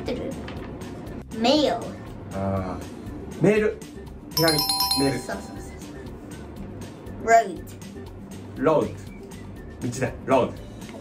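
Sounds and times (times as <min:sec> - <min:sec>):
background music: 0:00.9 - 0:11.0
two-note chime: 0:04.4 - 0:05.9.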